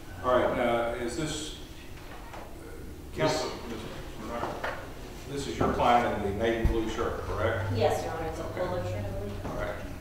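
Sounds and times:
men talking quietly: 0.0s - 10.0s.

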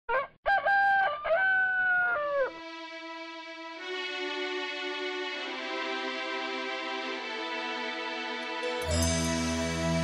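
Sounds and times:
rooster crowing: 0.1s - 2.6s.

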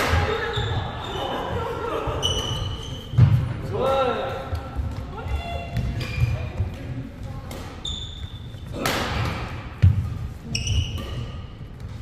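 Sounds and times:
shoes squeaking: 0.2s - 3.5s, 4.7s - 12.0s.

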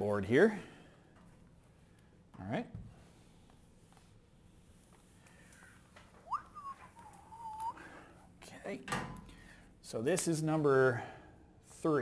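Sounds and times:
person whistling: 6.2s - 7.9s.

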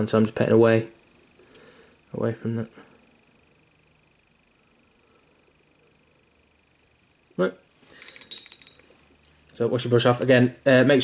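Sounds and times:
faint high-pitched whine: 0.0s - 11.0s.

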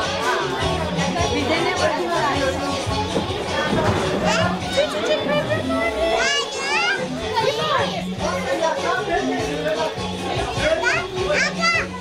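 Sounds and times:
background music with low notes: 0.0s - 12.0s
women and children chattering: 0.0s - 12.0s
child's high voice rising: 5.3s - 7.7s.

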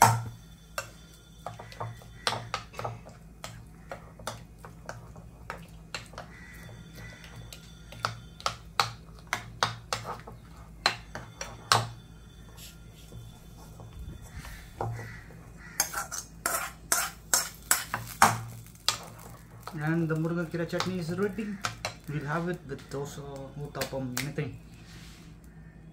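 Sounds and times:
low steady hum: 0.0s - 25.9s
metal spoon scraping ceramic bowl: 15.8s - 18.0s.

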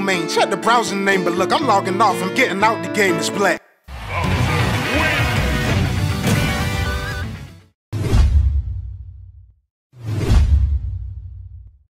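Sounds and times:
deep bass boom with swish: 10.1s - 11.9s.

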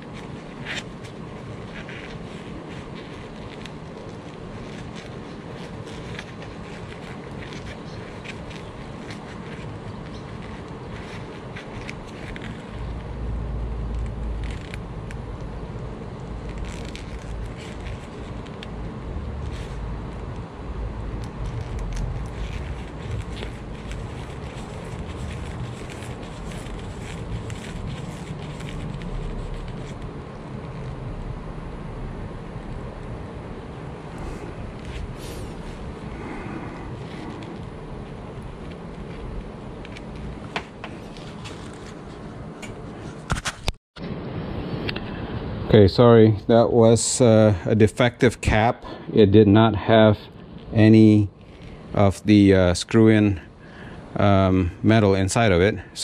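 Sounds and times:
plastic wire nut scraping: 21.2s - 30.9s.

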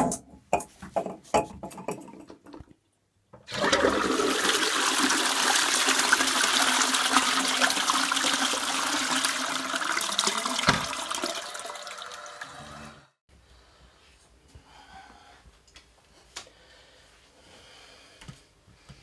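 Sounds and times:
toilet flush water rushing: 3.4s - 13.1s.

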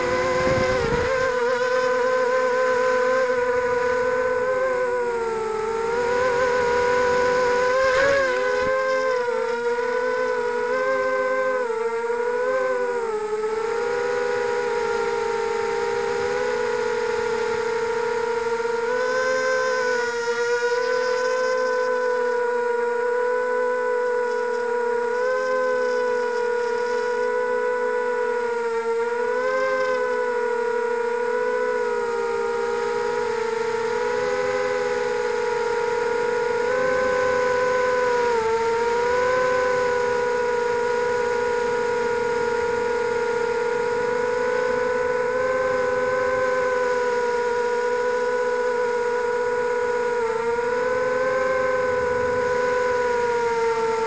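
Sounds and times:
drone motors whining: 0.0s - 54.0s.

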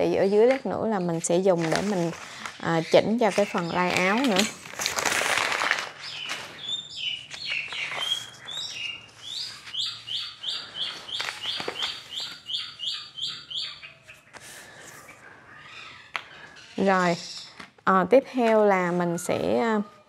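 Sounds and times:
paper rustling: 0.5s - 12.6s
bird singing: 2.6s - 4.2s, 6.0s - 14.4s, 15.0s - 17.6s.

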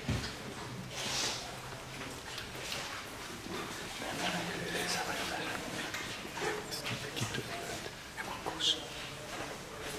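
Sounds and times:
indistinct talk: 3.3s - 9.9s.

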